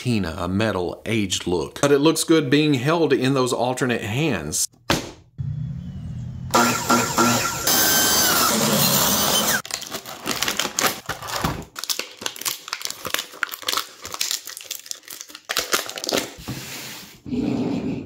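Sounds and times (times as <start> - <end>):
plastic bag crinkling: 9.6 - 16.4.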